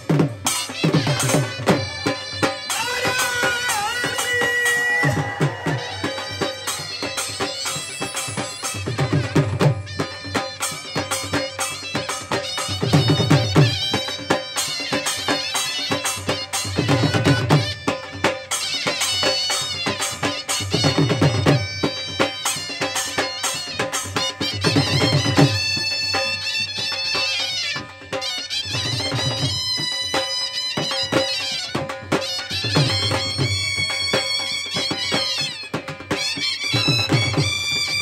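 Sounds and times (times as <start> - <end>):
dhol drums beaten with sticks: 0.0 - 38.0
wavering wind instrument melody: 0.1 - 38.0.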